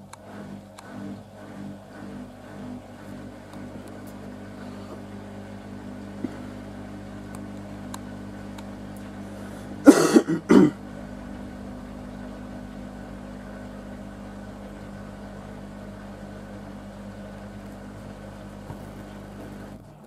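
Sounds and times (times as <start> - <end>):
washing machine humming: 0.0 - 20.0
person coughing loudly: 9.8 - 10.8.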